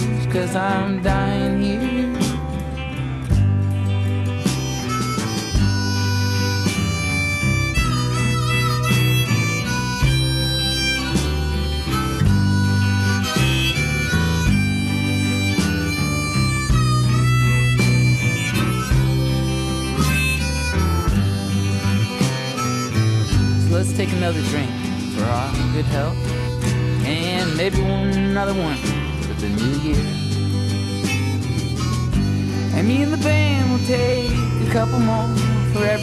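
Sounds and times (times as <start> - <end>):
guitar and bass: 0.0 - 36.0
harmonica solo: 0.0 - 36.0.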